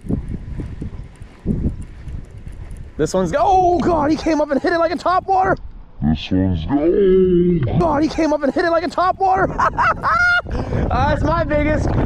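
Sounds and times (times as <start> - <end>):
wind buffeting microphone: 0.0 - 6.0, 7.6 - 12.0.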